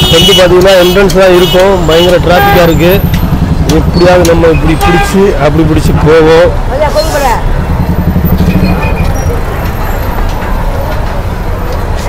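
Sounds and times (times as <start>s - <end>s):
bus engine rumbling: 0.0s - 12.0s
street traffic: 0.0s - 12.0s.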